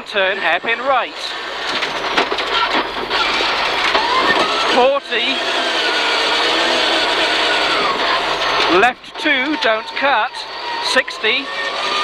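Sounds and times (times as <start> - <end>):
tyres on gravel: 0.0 - 12.0
engine at high revs: 1.0 - 12.0.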